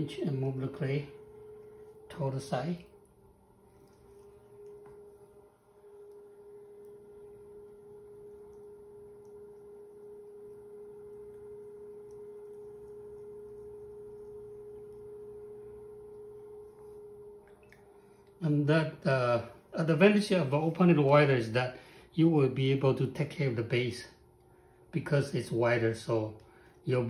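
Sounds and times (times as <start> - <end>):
potter's wheel humming: 0.0 - 27.0.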